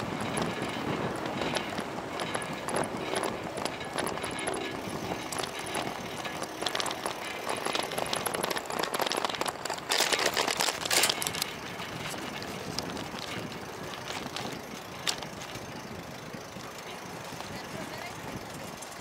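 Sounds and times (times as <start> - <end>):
wind noise on microphone: 0.0 - 19.0.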